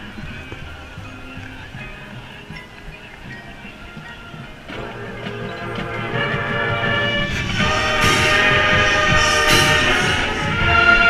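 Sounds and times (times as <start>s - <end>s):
brass band sustained chord: 4.7s - 11.0s
percussion stroke: 4.7s - 11.0s.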